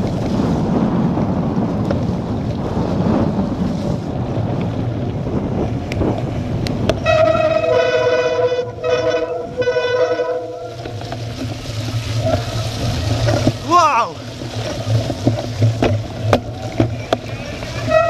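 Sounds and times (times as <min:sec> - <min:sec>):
bicycle tyres on muddy track: 0:00.0 - 0:18.0
wind: 0:00.0 - 0:18.0
bicycle brakes howling: 0:01.7 - 0:18.0.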